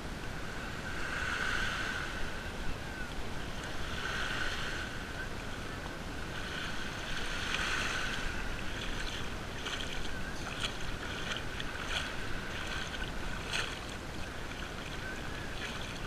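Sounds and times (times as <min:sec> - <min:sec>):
wind on microphone: 0:00.0 - 0:16.0
small waves hissing: 0:00.2 - 0:16.0
shallow water splashing: 0:06.4 - 0:16.0.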